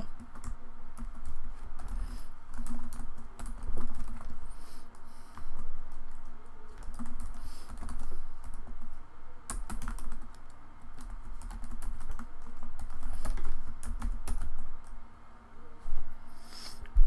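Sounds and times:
typing on computer keyboard: 0.1s - 4.4s, 5.6s - 8.8s, 9.5s - 14.9s.

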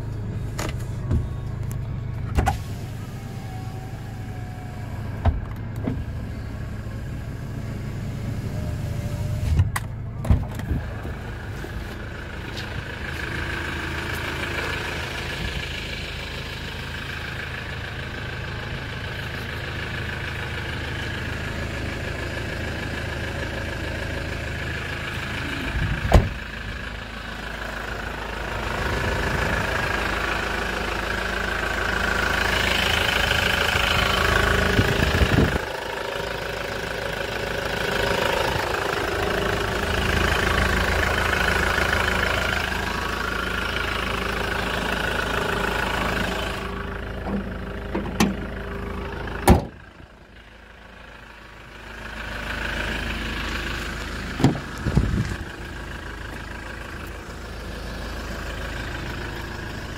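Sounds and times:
van engine idling: 0.0s - 59.9s
sharp thuds and clunks: 54.4s - 55.4s.

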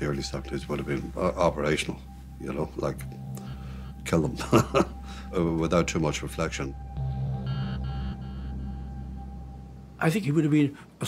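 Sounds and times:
low drone with high held note: 0.0s - 10.3s.

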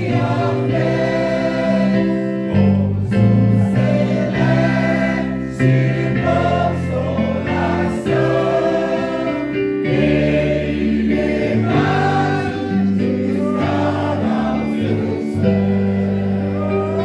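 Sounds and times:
group singing a hymn: 0.0s - 17.0s.

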